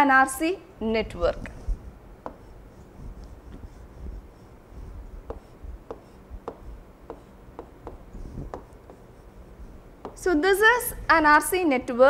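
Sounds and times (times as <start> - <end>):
faint stylus scratching: 1.4 - 10.4.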